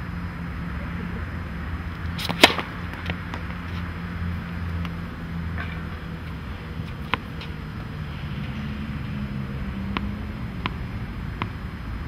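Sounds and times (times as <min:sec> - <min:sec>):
steady low hum: 0:00.0 - 0:12.0
racket swing: 0:02.1 - 0:03.9
racket striking tennis ball: 0:02.2 - 0:03.8, 0:09.7 - 0:11.7.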